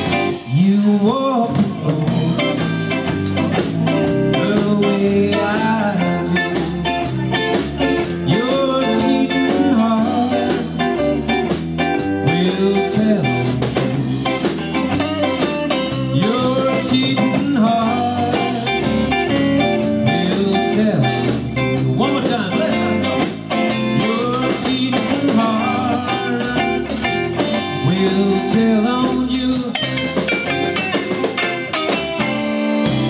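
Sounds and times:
bass guitar: 0.0 - 33.0
drum kit: 0.0 - 33.0
electric guitar lead: 0.0 - 33.0.

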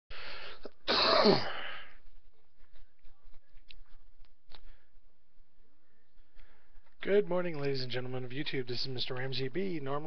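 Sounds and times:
man clearing his throat: 0.8 - 1.7.

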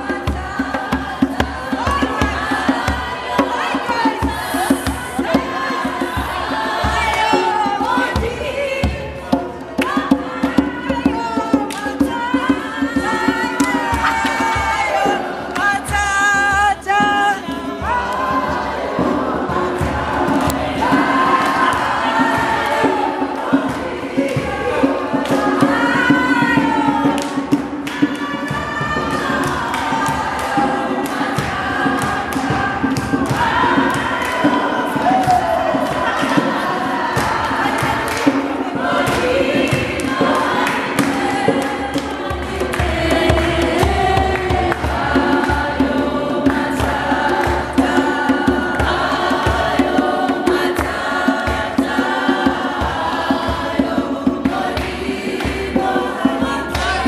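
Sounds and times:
group of people singing: 0.0 - 57.0
hand drum beating: 0.0 - 57.0
sharp rhythmic hits: 0.0 - 57.0.

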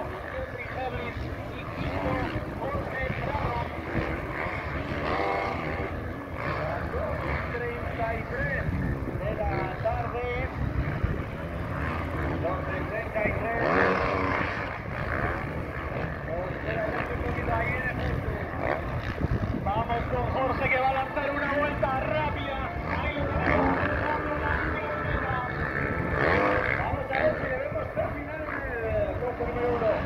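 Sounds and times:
motocross bike engines revving: 0.0 - 30.0.

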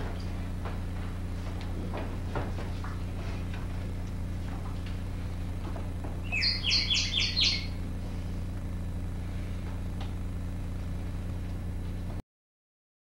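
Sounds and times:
low electrical hum: 0.0 - 12.2
bird chirping: 6.2 - 7.8.

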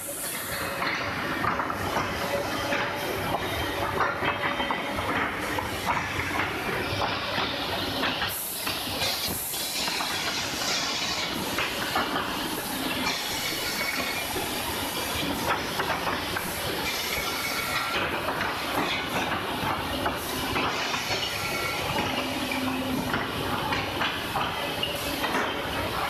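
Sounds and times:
woodworking machinery hissing: 5.4 - 26.0.

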